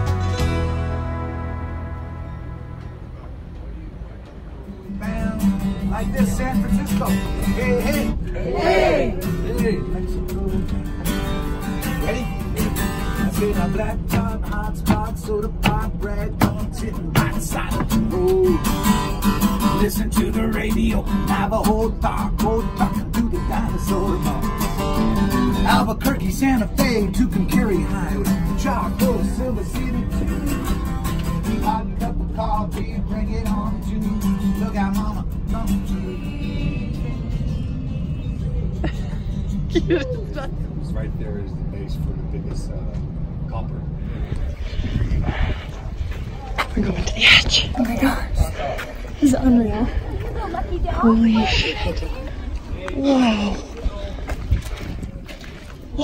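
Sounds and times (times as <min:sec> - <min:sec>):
acoustic guitar strumming: 0:00.0 - 0:03.5, 0:04.6 - 0:08.3, 0:09.0 - 0:40.4
train carriage rumble: 0:00.0 - 0:56.0
man singing: 0:04.9 - 0:08.4, 0:09.0 - 0:11.1, 0:11.8 - 0:38.8.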